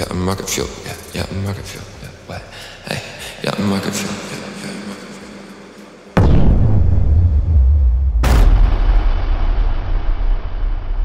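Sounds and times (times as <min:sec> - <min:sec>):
deep boom: 0:06.2 - 0:11.0
low rumble: 0:06.2 - 0:11.0
sharp hit: 0:06.2 - 0:11.0.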